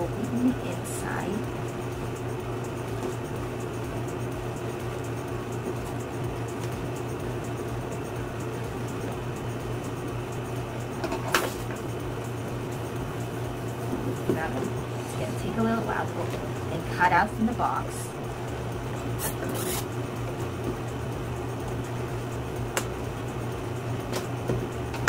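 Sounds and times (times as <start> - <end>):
low room hum: 0.0 - 25.0.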